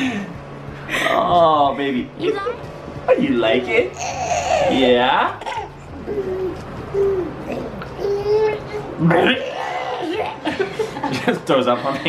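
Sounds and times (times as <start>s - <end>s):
baby cooing: 3.9s - 10.4s.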